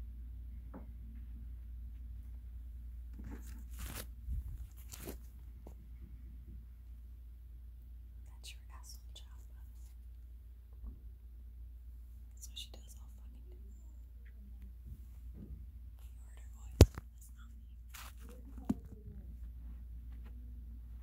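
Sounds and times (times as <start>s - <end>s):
steady low hum: 0.0s - 21.0s
muffled talking through floor: 17.2s - 21.0s.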